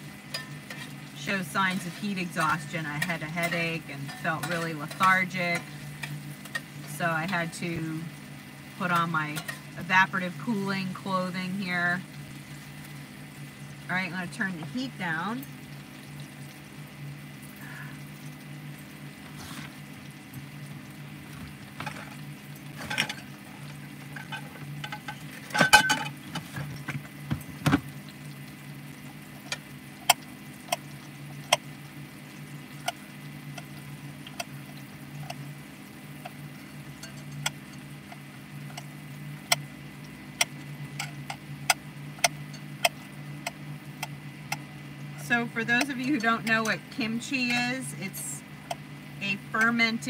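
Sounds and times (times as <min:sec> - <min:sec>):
steady low hum: 0:00.0 - 0:50.0
vegetables sizzling in skillet: 0:00.0 - 0:50.0.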